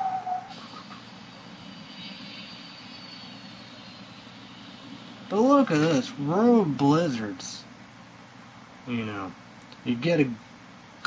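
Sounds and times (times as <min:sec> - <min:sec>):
faint high whine: 0:00.0 - 0:11.0
low rumbling background noise: 0:00.0 - 0:11.0.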